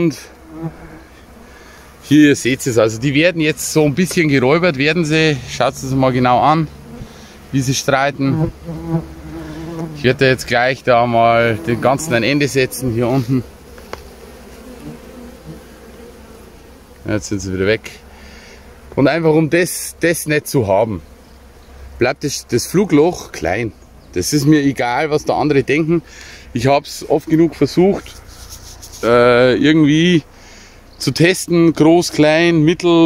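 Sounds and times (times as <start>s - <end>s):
honeybees buzzing: 0.0s - 33.0s.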